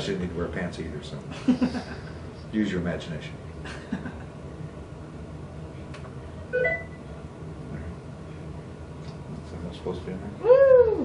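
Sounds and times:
two-note rising electronic beep: 6.6s - 7.0s.

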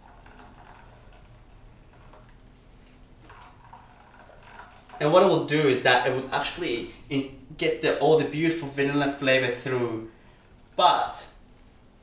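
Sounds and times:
milk trickling into a bowl: 0.0s - 7.1s.

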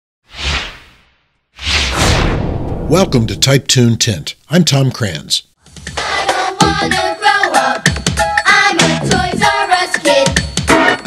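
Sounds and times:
whoosh sound effect: 0.3s - 3.5s
low rumble: 1.9s - 3.6s.

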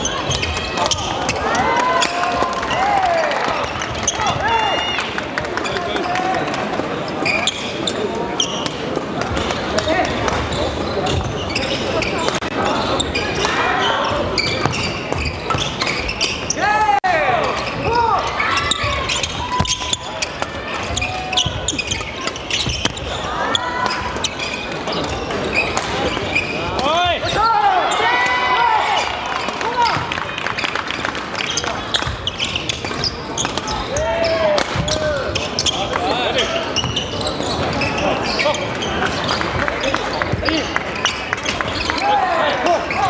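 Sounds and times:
shoes squeaking on court: 0.0s - 2.2s, 3.5s - 4.5s, 7.0s - 16.6s, 17.5s - 28.0s, 29.0s - 43.0s
indistinct chatter: 0.0s - 43.0s.

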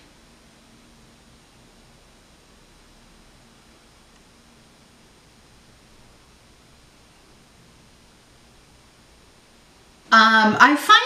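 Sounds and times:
faint low hum: 0.0s - 11.0s
faint steady hiss: 0.0s - 11.0s.

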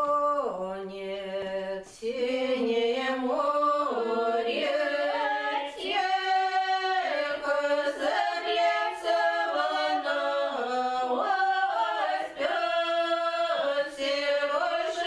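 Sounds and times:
women singing a cappella: 0.0s - 15.0s.

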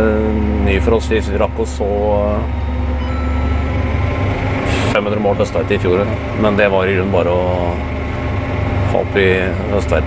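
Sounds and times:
tractor engine running under load: 0.0s - 10.0s.

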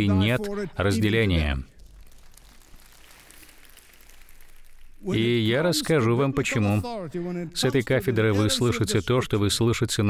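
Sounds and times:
crowd applauding: 1.8s - 5.4s.

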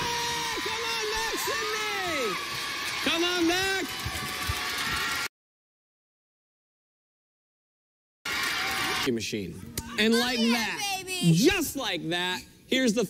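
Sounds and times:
man shouting: 0.0s - 2.4s.

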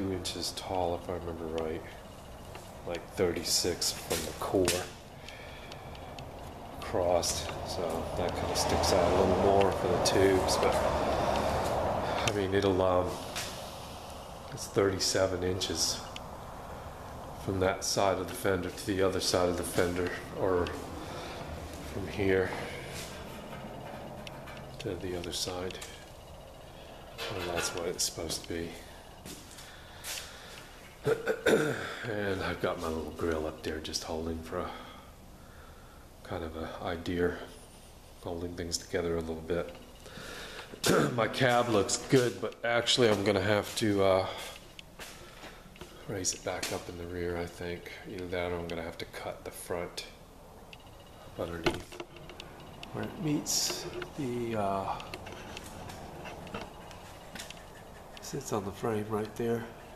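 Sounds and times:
low steady background noise: 0.0s - 59.9s
person breathing: 5.1s - 6.4s, 11.4s - 12.3s, 20.8s - 23.6s, 28.8s - 30.8s, 34.6s - 36.2s, 40.0s - 40.8s, 44.2s - 46.1s.

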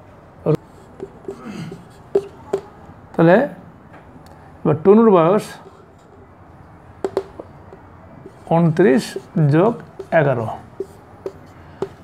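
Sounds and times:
marker writing on whiteboard: 0.5s - 2.9s, 5.4s - 12.0s.

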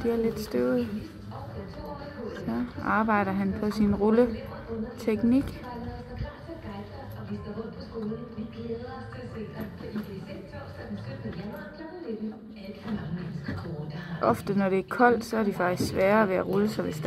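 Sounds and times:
faint music: 0.0s - 17.0s
indistinct background voices: 0.0s - 17.0s.

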